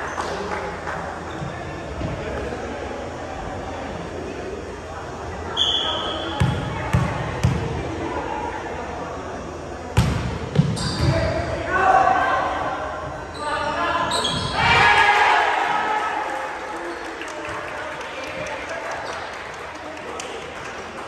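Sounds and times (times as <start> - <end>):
volleyball being hit: 10.0 - 11.2
players shouting: 14.0 - 16.7.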